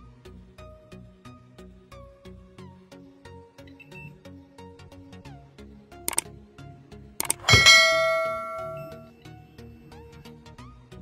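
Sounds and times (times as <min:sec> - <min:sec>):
mouse clicks: 0:07.2 - 0:07.7
bright bell ding: 0:07.2 - 0:09.0.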